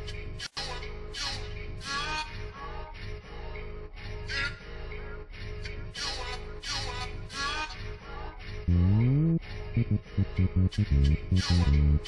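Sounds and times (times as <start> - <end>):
hip-hop beat: 8.7 - 12.0
looped sample sliding downward: 8.7 - 12.0
steady low bass: 8.7 - 12.0.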